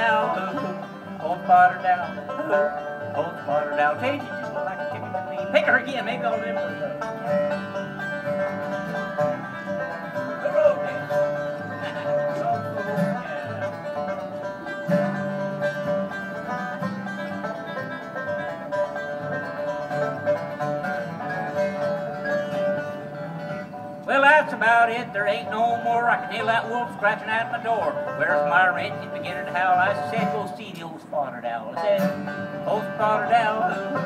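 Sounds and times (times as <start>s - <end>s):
instrumental lead line: 0.0s - 30.7s, 31.5s - 34.0s
plucked upright bass: 0.0s - 30.8s, 31.7s - 34.0s
strummed acoustic guitars: 0.0s - 34.0s.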